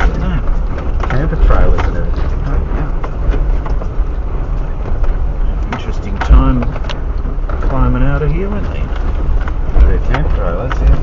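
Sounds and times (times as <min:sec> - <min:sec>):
low engine and road rumble: 0:00.0 - 0:11.0.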